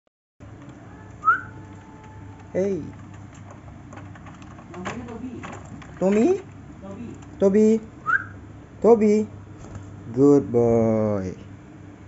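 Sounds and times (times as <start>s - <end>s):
short rising whistle: 1.2s - 1.5s, 8.0s - 8.4s.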